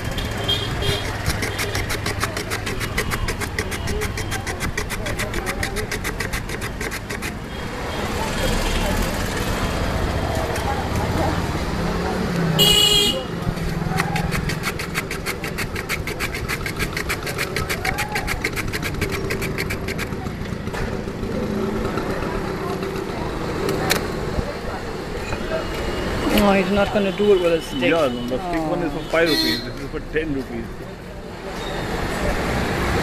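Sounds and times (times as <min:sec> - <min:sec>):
street traffic: 0:00.0 - 0:33.0
ice scraping on shaver blade: 0:00.1 - 0:08.2, 0:13.6 - 0:20.4
vehicle horn honk: 0:12.6 - 0:13.3, 0:29.1 - 0:29.8.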